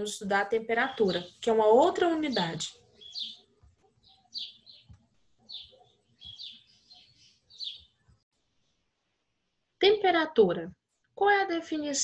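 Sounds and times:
faint small bird chirping: 0.8s - 8.8s.

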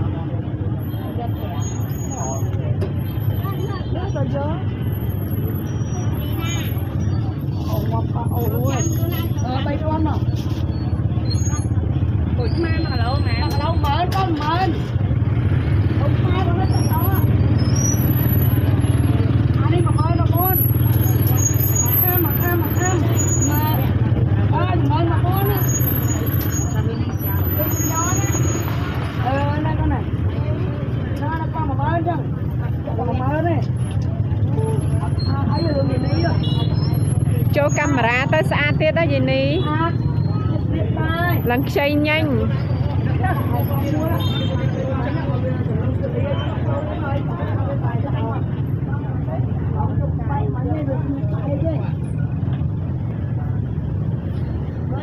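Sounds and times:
people talking: 0.0s - 10.6s, 15.9s - 55.0s.

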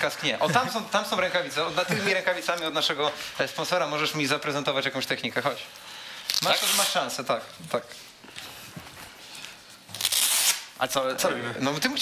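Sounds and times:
footsteps on studio floor: 7.9s - 9.7s.

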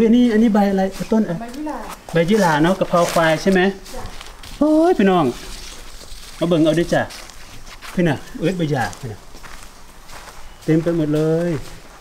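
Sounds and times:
person speaking: 0.0s - 9.3s, 10.6s - 11.8s
faint footsteps: 0.0s - 12.0s.

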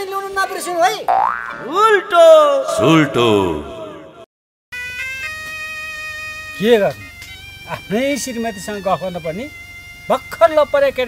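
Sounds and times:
springy cartoon boing: 1.1s - 1.8s
man speaking: 1.6s - 4.2s.

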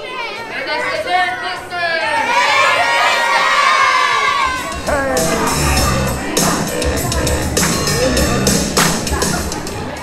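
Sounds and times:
children shouting and cheering: 2.2s - 10.0s
music with bass beat: 4.6s - 10.0s.

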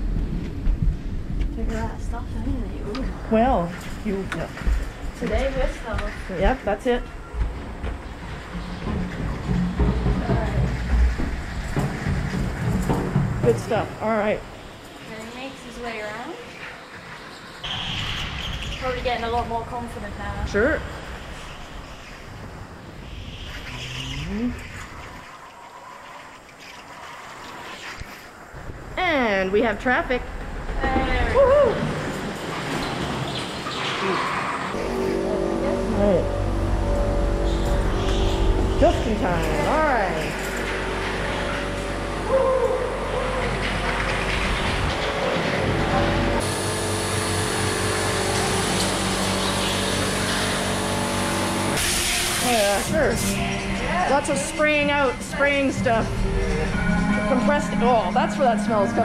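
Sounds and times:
go-kart engines humming: 30.8s - 51.8s.

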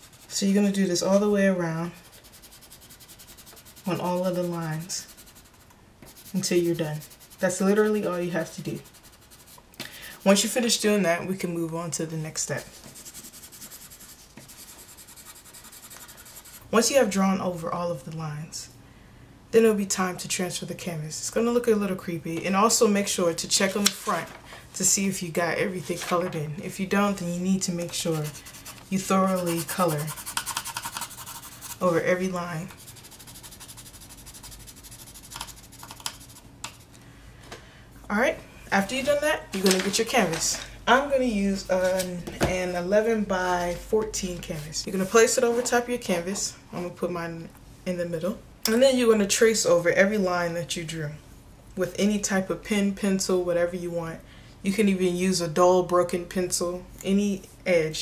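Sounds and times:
pencil scribbling on paper: 0.0s - 0.8s, 2.0s - 10.6s, 12.6s - 16.7s, 27.7s - 36.9s.

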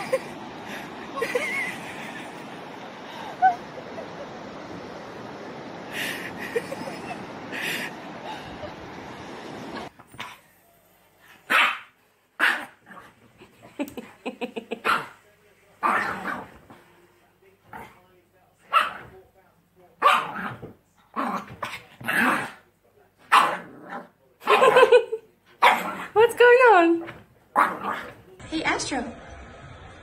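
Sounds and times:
small dog barking: 11.5s - 12.8s, 14.8s - 15.2s, 18.7s - 19.1s, 20.0s - 20.6s, 23.3s - 23.7s, 25.6s - 26.0s.

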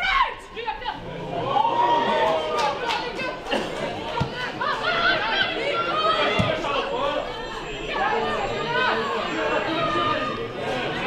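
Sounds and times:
people calling and talking: 0.0s - 11.0s.

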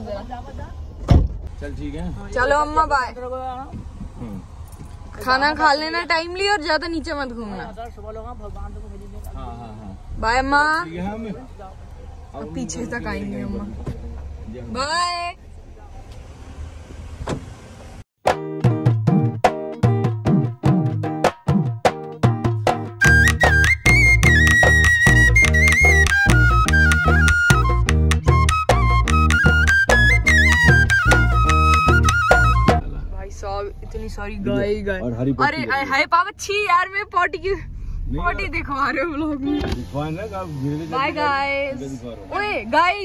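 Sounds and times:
car door closing with a thud: 1.0s - 1.5s, 16.9s - 17.9s
music with percussive beat: 18.2s - 32.8s.

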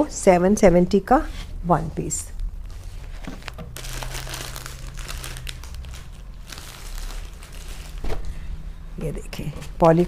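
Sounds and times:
wrapping crinkling: 2.6s - 8.2s.

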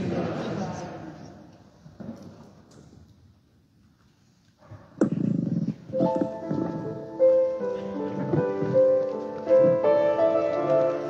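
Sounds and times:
keyboard playing held chords: 6.0s - 11.0s.

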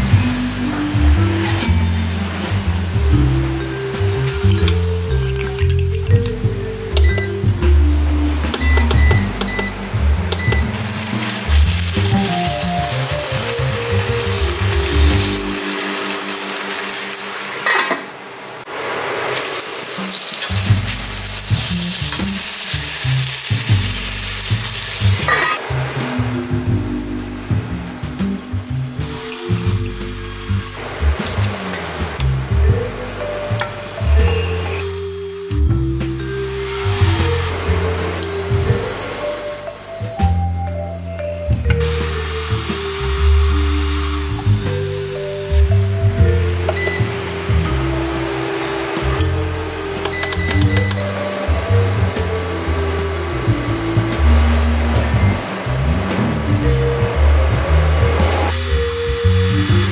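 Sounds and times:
background music: 0.0s - 18.0s, 20.5s - 59.9s
pork sizzling in a pan: 10.3s - 32.3s, 33.4s - 35.3s, 36.4s - 45.7s, 46.4s - 56.8s, 57.5s - 59.9s.

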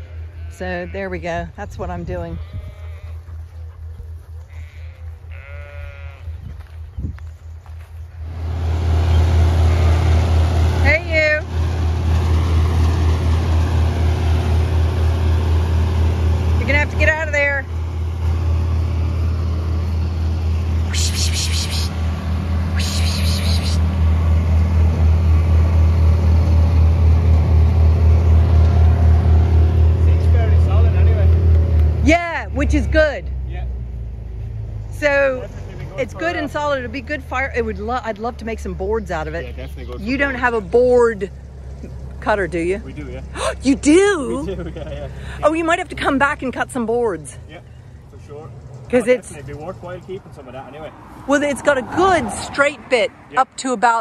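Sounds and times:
sheep bleating: 0.0s - 1.2s, 2.2s - 3.4s, 4.4s - 6.4s
vehicle engine idling: 0.0s - 53.9s.

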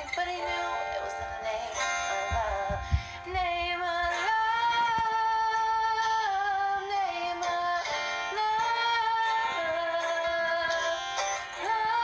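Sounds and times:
pop backing track: 0.0s - 12.0s.

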